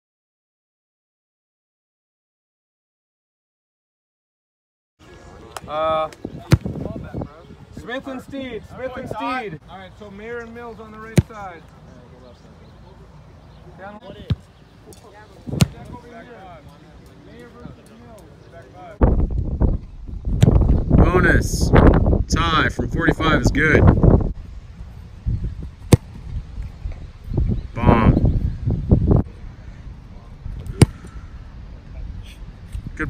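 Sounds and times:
faint distant voices: 0:05.0 - 0:19.0, 0:29.1 - 0:33.0
wind noise on microphone: 0:05.3 - 0:09.6, 0:19.0 - 0:33.0
football kick thumps: 0:06.4 - 0:07.0, 0:15.5 - 0:16.0, 0:25.8 - 0:26.2.

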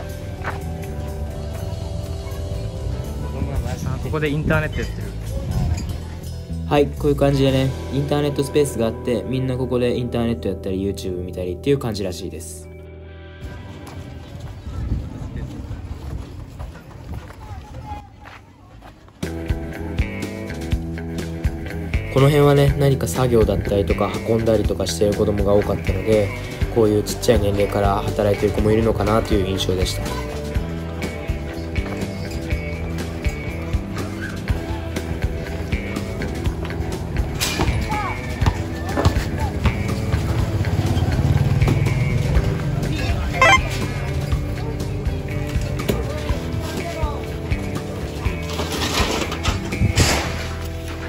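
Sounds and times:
footsteps: 0:13.6 - 0:19.3
wind rumble on microphone: 0:14.0 - 0:18.0.

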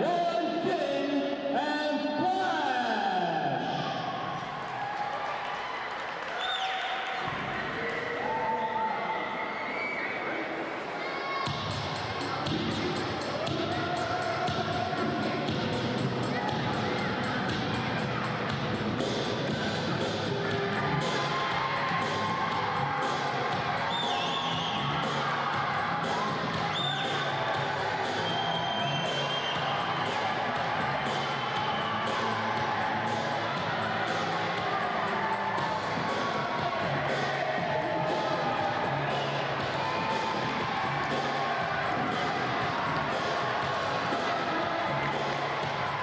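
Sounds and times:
music: 0:00.0 - 0:05.0, 0:10.4 - 0:46.0
voices: 0:10.2 - 0:46.0.

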